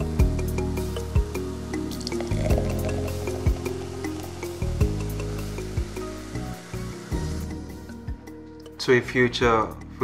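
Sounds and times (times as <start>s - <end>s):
sparkling wine pouring and fizzing: 0.0s - 8.8s
background music with steady beat: 0.0s - 10.0s.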